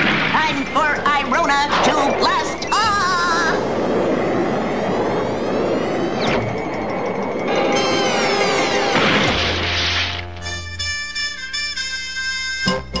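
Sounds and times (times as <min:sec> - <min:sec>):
low hum: 0:00.7 - 0:10.8
background music: 0:03.9 - 0:13.0
cartoon crash: 0:08.6 - 0:10.6.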